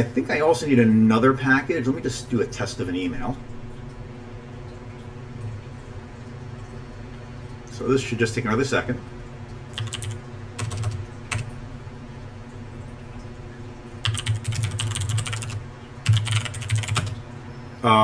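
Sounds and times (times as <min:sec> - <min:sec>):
computer keyboard typing: 0:09.7 - 0:11.5, 0:14.0 - 0:17.2.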